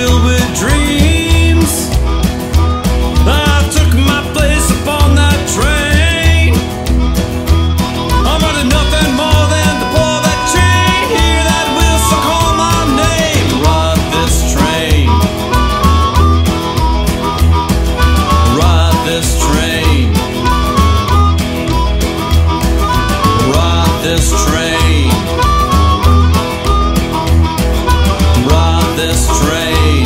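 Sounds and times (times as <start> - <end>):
roots rock band playing: 0.0 - 30.0.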